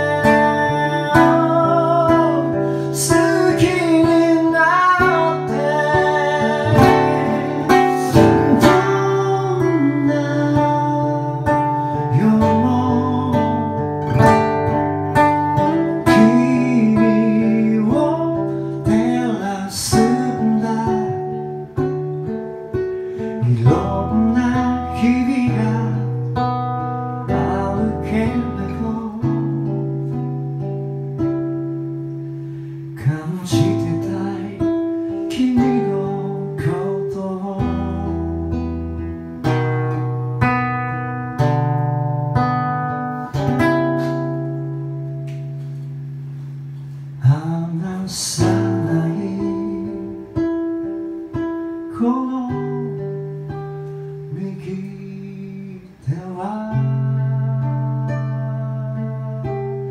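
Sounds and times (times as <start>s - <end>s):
person singing: 0.0s - 14.2s, 15.4s - 21.9s, 23.4s - 29.8s, 33.0s - 38.5s
acoustic guitar playing slow song: 0.0s - 59.9s.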